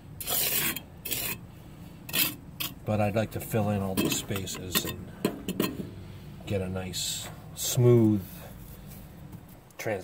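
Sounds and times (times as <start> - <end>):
trowel scraping mortar on brick: 0.2 - 1.5, 2.1 - 2.8.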